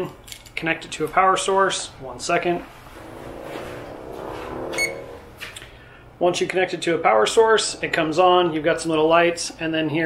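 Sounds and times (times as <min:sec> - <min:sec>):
vehicle engine humming: 0:02.8 - 0:05.8.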